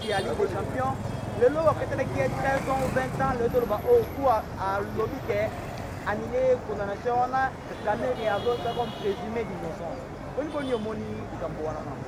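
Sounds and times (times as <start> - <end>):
man speaking: 0.0 - 12.0
street traffic noise: 0.0 - 12.0.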